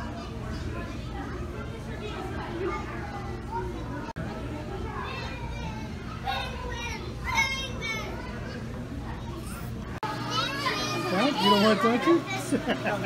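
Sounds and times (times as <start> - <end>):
children's excited voices: 0.1 - 13.0.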